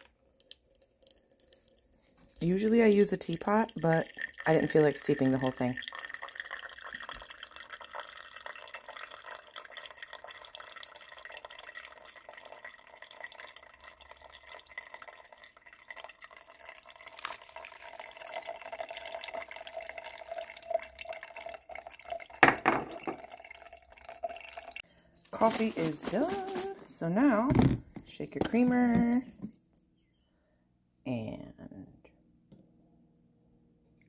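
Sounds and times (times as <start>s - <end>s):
coffee dripping into a mug: 0.0s - 24.9s.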